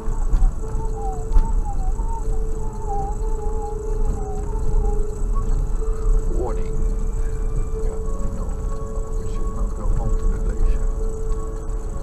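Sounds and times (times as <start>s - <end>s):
steady hum: 0.0s - 12.0s
thin wavering whine: 0.0s - 12.0s.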